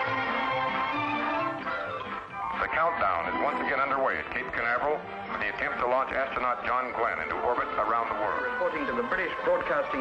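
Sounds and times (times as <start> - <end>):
music: 0.0 - 10.0
person speaking like news report: 2.6 - 10.0.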